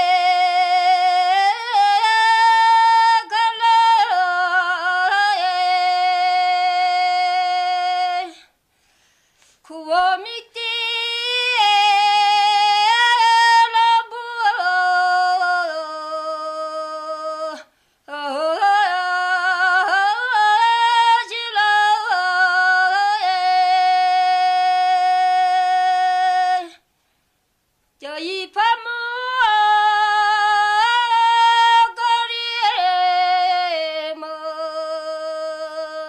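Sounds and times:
woman singing unaccompanied: 0:00.0 - 0:08.6, 0:09.6 - 0:26.9, 0:28.0 - 0:36.0.

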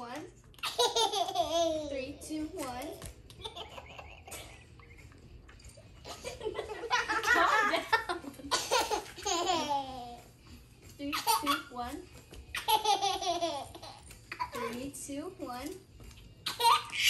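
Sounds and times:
children laughing: 0:00.6 - 0:01.8, 0:03.4 - 0:05.2, 0:06.0 - 0:10.3, 0:12.6 - 0:14.7.

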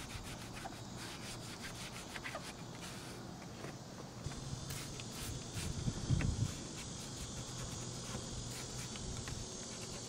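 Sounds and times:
insects chirping: 0:00.0 - 0:10.0.

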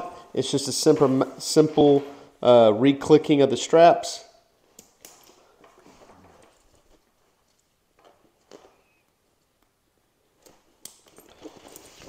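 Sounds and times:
strap buckles clicking: 0:10.4 - 0:12.0
fabric backpack rustling: 0:11.1 - 0:12.0.

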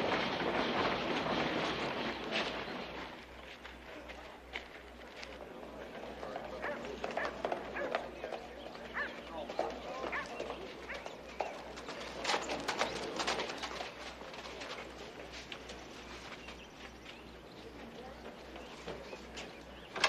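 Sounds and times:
horse hooves clopping on dirt: 0:00.0 - 0:20.0
crowd voices: 0:03.8 - 0:15.8.

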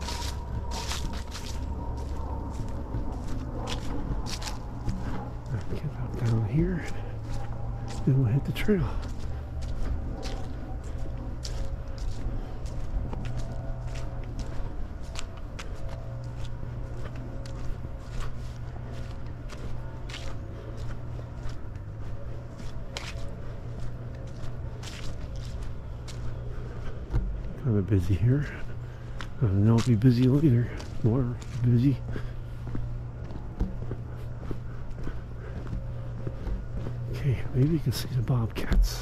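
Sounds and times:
footsteps on a trail: 0:00.0 - 0:39.0
steady low rumble: 0:00.0 - 0:39.0.

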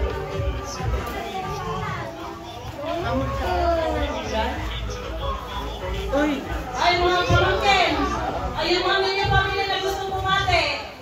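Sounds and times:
children's voices: 0:00.0 - 0:11.0
people talking: 0:00.0 - 0:11.0.

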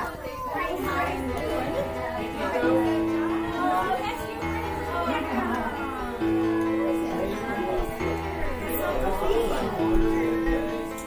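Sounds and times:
people chatting: 0:00.0 - 0:11.0
background music: 0:00.5 - 0:11.0.

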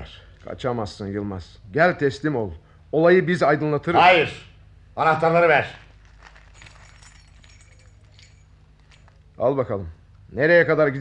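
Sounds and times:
low steady hum: 0:00.0 - 0:11.0
car keys jingling: 0:05.8 - 0:09.4.

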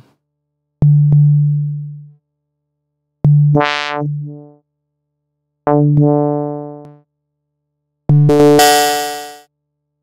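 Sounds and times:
low synthesizer notes: 0:03.3 - 0:04.6, 0:05.7 - 0:07.0.

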